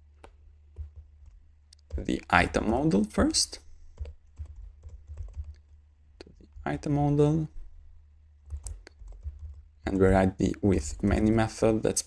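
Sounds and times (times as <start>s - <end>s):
computer keyboard typing: 0.2s - 2.2s, 3.9s - 5.8s, 8.4s - 10.1s.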